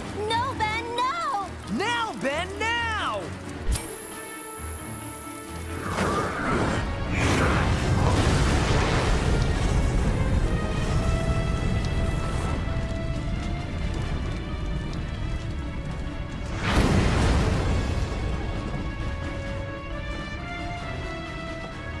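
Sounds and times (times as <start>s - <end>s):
background music: 0.0s - 22.0s
cartoon explosion rush of fire: 5.8s - 12.7s, 16.5s - 18.6s.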